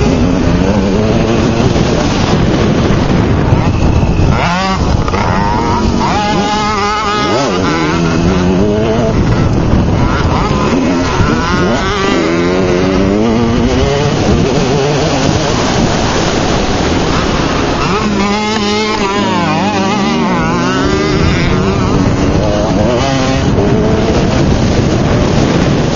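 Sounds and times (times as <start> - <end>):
dirt bike engine revving: 0.0 - 25.9.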